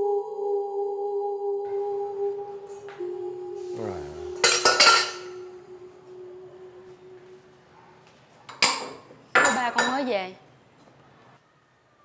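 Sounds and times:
steel pots clanking: 4.4 - 5.4.

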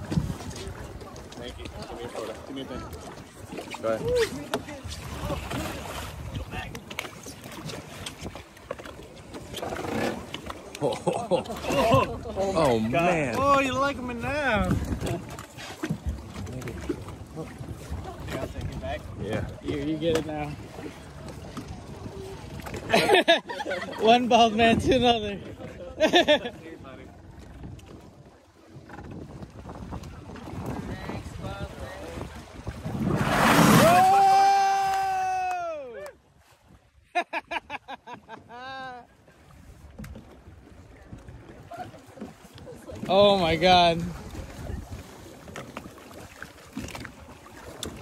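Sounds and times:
wind on microphone: 0.0 - 8.5, 11.6 - 23.0, 26.7 - 35.5, 39.5 - 48.0
water sloshing against boat hull: 0.0 - 48.0.

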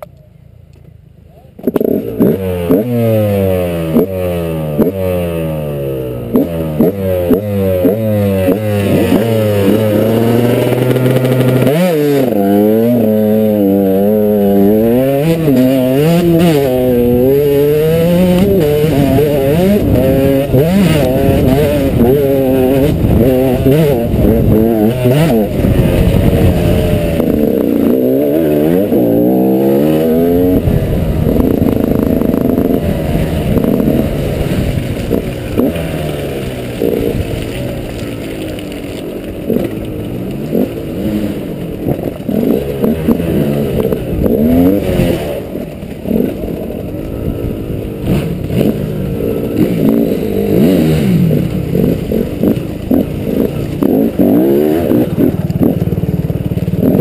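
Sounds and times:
dirt bike engine revving: 1.6 - 57.0.

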